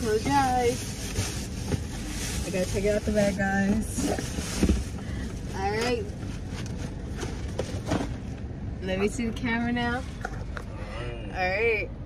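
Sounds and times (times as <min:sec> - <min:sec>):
gift box and bag rustling: 0:00.0 - 0:08.2
car interior rumble: 0:00.0 - 0:12.0.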